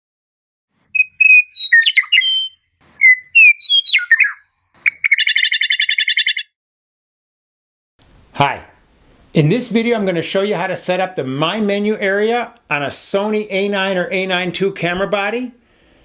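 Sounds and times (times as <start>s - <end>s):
songbird trill: 0.9s - 6.5s
songbird whistled notes: 0.9s - 6.5s.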